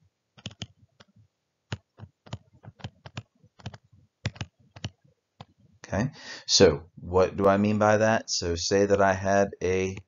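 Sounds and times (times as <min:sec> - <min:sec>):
stylus tapping on tablet screen: 0:01.7 - 0:05.6.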